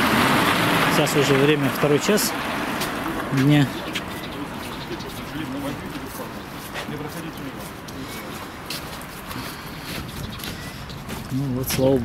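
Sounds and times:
street background noise: 0:00.0 - 0:12.0
footsteps on slushy paving: 0:00.1 - 0:12.0
low voices: 0:00.8 - 0:12.0.

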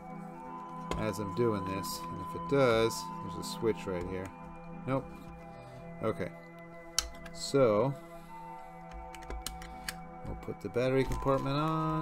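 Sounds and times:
quiet music of held tones: 0:00.0 - 0:12.0.

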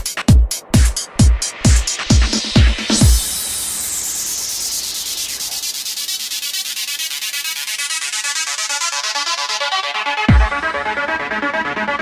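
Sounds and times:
white noise sweep falling: 0:01.4 - 0:06.7.

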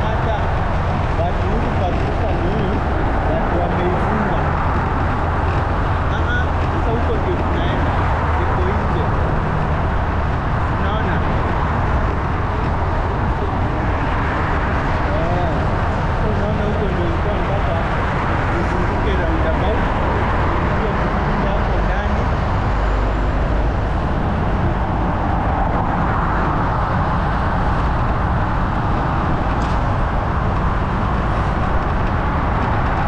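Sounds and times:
road traffic: 0:00.0 - 0:33.0
wind rumble: 0:00.0 - 0:33.0.

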